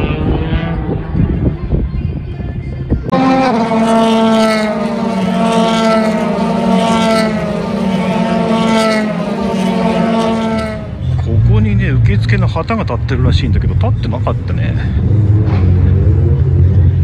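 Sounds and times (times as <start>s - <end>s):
race car engine running: 2.9s - 17.0s.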